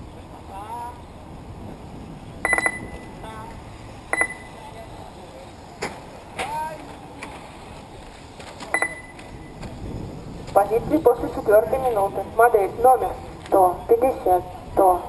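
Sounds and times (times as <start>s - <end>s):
short electronic beeps: 2.4s - 3.2s, 4.1s - 4.6s, 8.8s - 9.6s.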